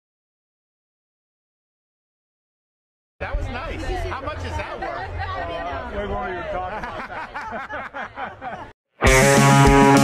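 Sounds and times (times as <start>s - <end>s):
people talking over one another: 3.2s - 8.7s.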